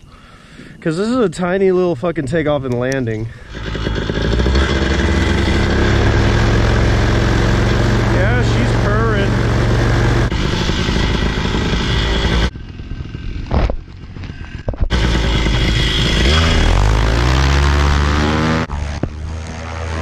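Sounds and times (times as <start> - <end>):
paramotor engine running: 3.3 - 20.0.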